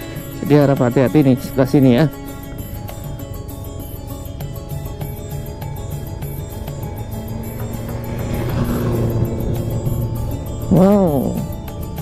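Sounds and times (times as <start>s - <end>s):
motor vehicle engine: 0.0s - 12.0s
music with steady beat: 0.0s - 12.0s.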